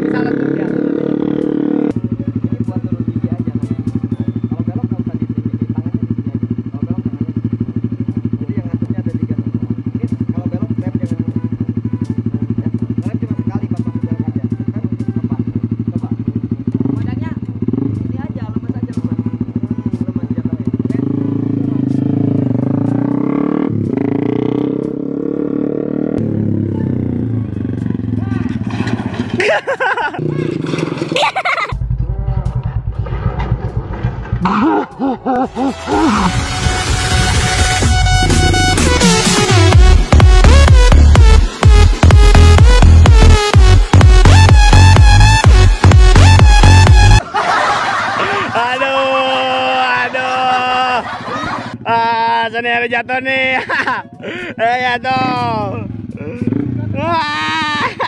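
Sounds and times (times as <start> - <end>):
motorcycle engine idling and revving: 0.0 - 58.0
motorcycle crashing on tarmac: 28.4 - 31.7, 32.7 - 34.6.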